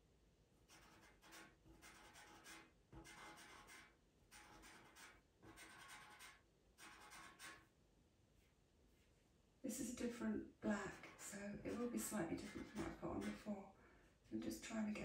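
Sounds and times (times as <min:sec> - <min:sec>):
pencil scratching on paper: 0:00.6 - 0:07.7, 0:10.7 - 0:13.5.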